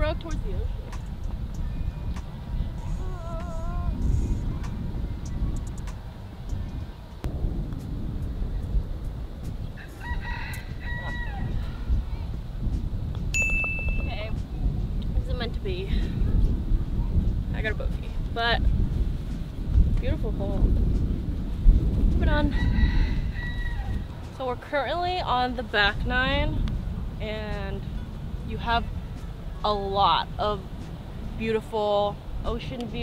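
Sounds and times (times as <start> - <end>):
wind rumbling on microphone: 0.0 - 33.0
distant rooster crowing: 9.8 - 11.9, 22.5 - 24.1.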